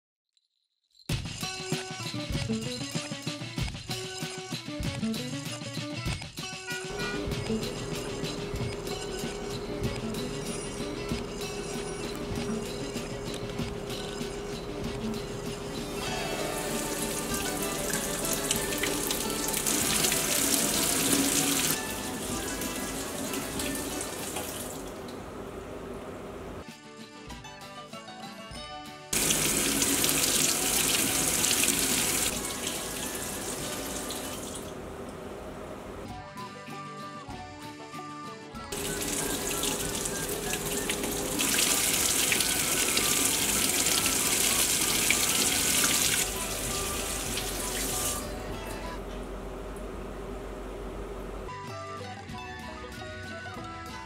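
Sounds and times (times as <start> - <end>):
tap water splashing into metal sink: 16.7 - 21.8, 22.4 - 25.2, 29.2 - 34.7, 38.8 - 48.3.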